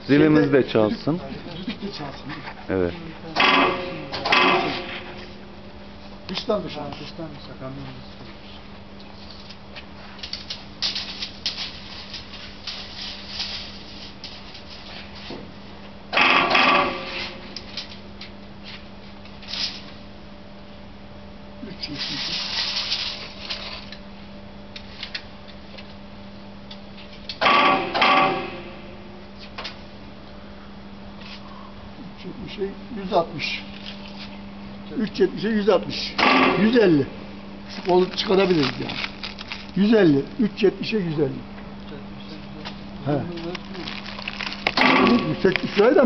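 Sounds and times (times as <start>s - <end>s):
hydraulic press humming: 3.4s - 5.4s, 16.1s - 17.6s, 27.4s - 29.0s, 36.0s - 37.4s, 44.7s - 46.0s.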